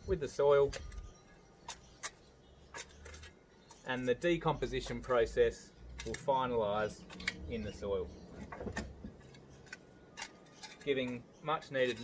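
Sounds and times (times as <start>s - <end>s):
spade scraping soil: 9.5s - 12.0s.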